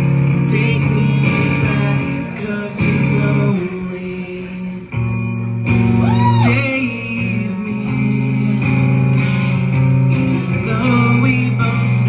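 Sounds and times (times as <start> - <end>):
electric guitar chord ringing: 0.0 - 12.0.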